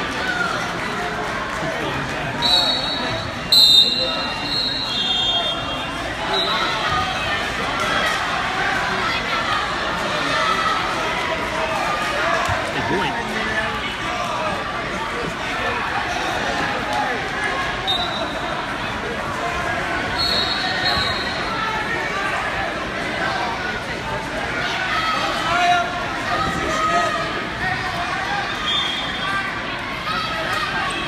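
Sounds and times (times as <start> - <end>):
crowd chatter echoing: 0.0 - 31.0
high whistle blasts: 2.4 - 5.7, 20.2 - 21.5.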